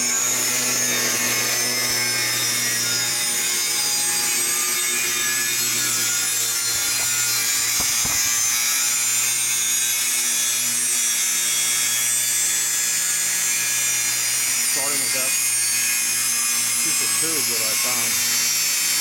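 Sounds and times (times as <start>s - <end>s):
angle grinder grinding steel: 0.0s - 19.0s.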